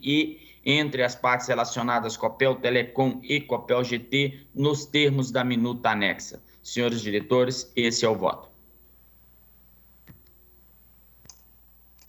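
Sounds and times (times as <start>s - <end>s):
low steady hum: 0.0s - 12.0s
faint clicks: 11.2s - 12.0s.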